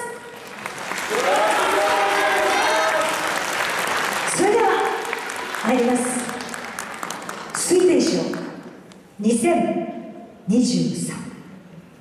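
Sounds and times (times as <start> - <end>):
audience applauding: 0.3 - 8.7.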